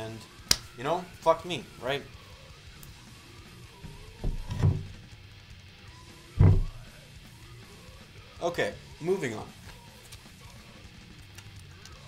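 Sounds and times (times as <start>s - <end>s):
faint background music: 0.0s - 12.0s
drum pedal clunking on table: 4.2s - 5.0s, 6.4s - 6.8s.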